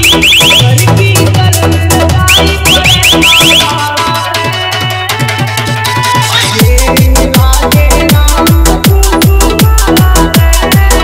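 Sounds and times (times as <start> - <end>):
dj remix with heavy bass: 0.0 - 11.0.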